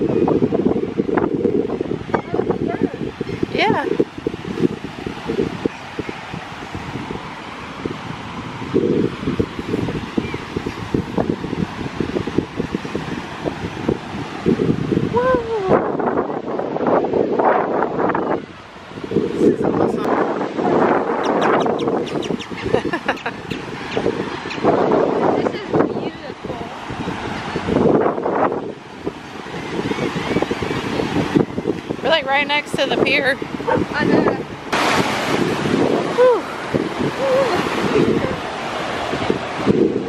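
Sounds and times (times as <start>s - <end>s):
surf washing: 0.0s - 40.0s
wind buffeting microphone: 0.0s - 40.0s
indistinct voices talking: 32.0s - 34.5s.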